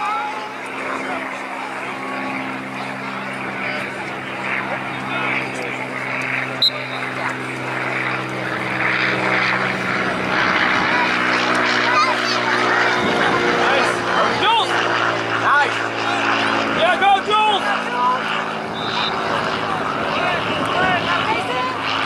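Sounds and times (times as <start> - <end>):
engine droning: 0.0 - 22.0
sharp whistle blast: 6.6 - 7.1, 18.8 - 19.3
distant shouting: 15.6 - 22.0.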